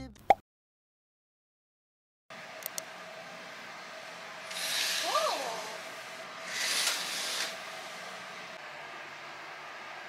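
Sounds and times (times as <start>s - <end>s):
curtain swish drawn open: 6.4s - 8.0s.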